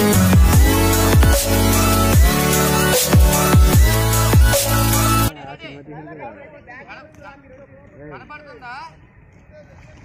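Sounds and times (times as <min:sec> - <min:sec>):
electronic dance music: 0:00.0 - 0:05.3.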